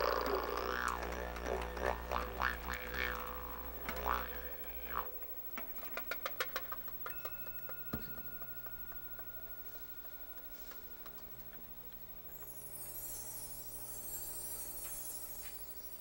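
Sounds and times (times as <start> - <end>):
low drone with wah-like overtones: 0.0 - 5.6
faint steady high tone: 2.8 - 16.0.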